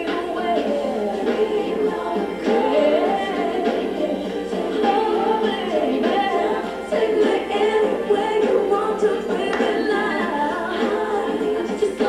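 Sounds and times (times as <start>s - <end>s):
voices singing together: 0.0s - 12.0s.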